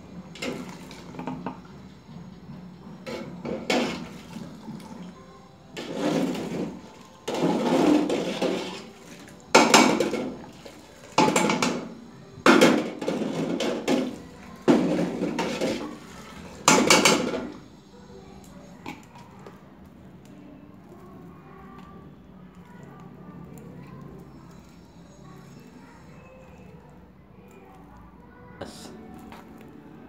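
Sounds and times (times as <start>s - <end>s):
metal kitchenware clattering: 11.2s - 17.6s.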